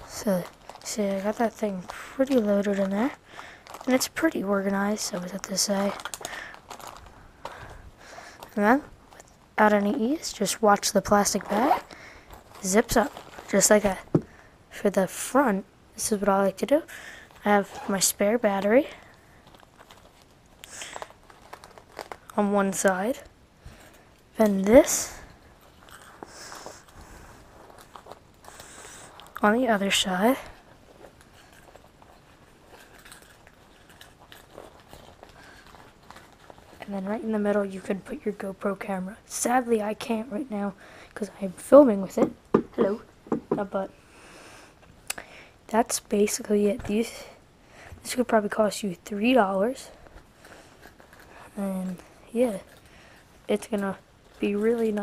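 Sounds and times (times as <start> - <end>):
plastic bag crinkling: 0.0 - 14.5, 16.6 - 38.9, 49.2 - 55.0
soft fabric rustling: 0.0 - 14.6, 16.0 - 44.0, 47.9 - 55.0.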